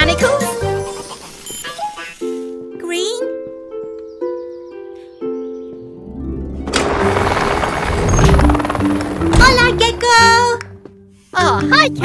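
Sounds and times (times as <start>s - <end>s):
light background music: 0.0s - 12.0s
cartoon helicopter rotor: 6.7s - 10.5s.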